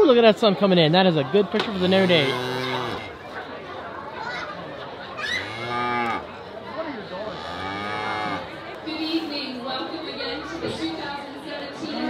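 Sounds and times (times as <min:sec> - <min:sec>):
crowd chatter: 0:00.0 - 0:12.0
cows mooing: 0:01.7 - 0:03.2, 0:05.3 - 0:06.3, 0:07.3 - 0:08.5.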